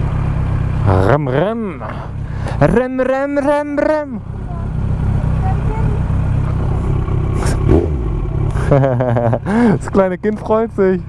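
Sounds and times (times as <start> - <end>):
motorcycle engine idling: 0.0 - 11.0
person talking and laughing: 8.5 - 10.0.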